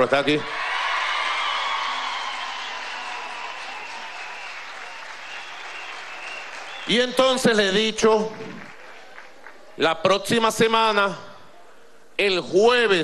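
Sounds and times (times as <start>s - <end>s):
crowd applauding and cheering: 0.4s - 9.8s.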